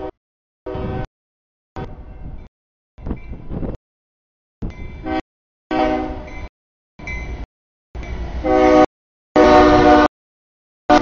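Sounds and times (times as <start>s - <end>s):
locomotive air horn blasts: 0.0s - 1.1s, 5.0s - 6.3s, 8.4s - 10.1s.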